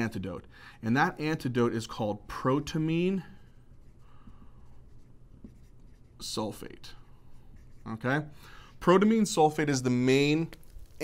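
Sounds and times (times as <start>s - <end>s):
marker writing on whiteboard: 2.3s - 10.0s.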